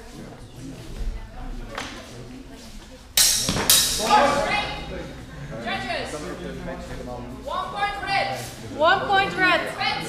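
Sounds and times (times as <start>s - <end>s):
sword strikes: 3.2s - 4.3s
people shouting: 4.0s - 4.9s.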